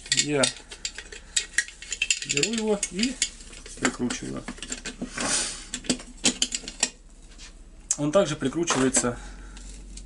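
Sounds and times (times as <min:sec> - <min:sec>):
metal scraping rub: 0:00.0 - 0:05.9.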